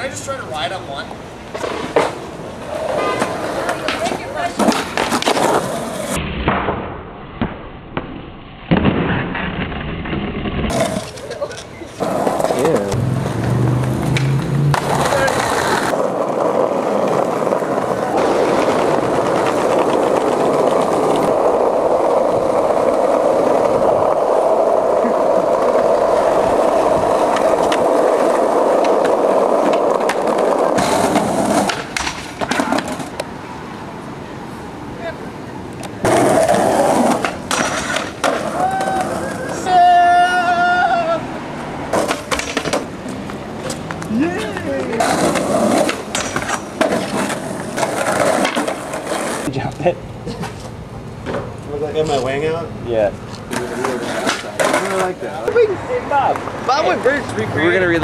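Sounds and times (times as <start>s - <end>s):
skateboard wheels rolling on concrete: 0.0s - 58.0s
skateboard clacks: 1.4s - 33.4s, 35.7s - 41.0s, 41.9s - 51.6s, 53.3s - 56.9s.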